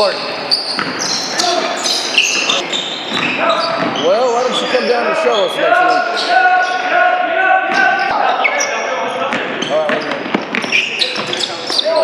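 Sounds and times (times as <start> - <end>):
sneaker squeaks: 0.0 - 6.8, 7.7 - 12.0
basketball bouncing: 0.7 - 1.2, 2.3 - 4.0, 9.3 - 11.8.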